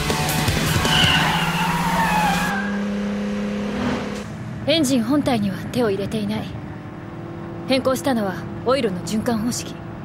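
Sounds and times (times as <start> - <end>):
tyre squeal: 0.7 - 2.8.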